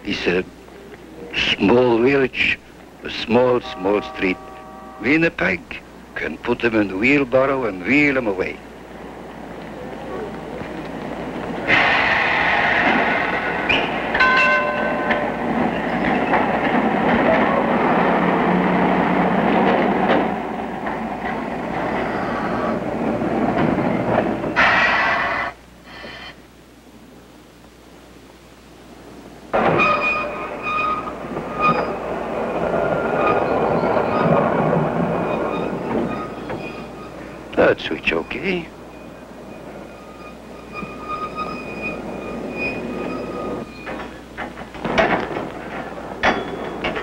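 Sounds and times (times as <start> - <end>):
high steady wheel tones: 0.0 - 24.6, 29.5 - 47.0
streetcars running on rails: 0.0 - 25.8, 29.0 - 47.0.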